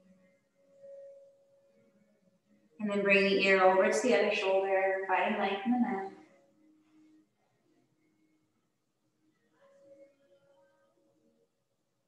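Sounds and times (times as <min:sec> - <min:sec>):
soft meditation music tone: 0:00.0 - 0:08.6.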